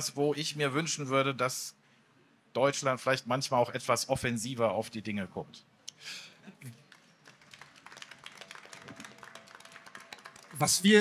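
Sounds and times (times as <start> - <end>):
quiet hall background: 0.0 - 11.0.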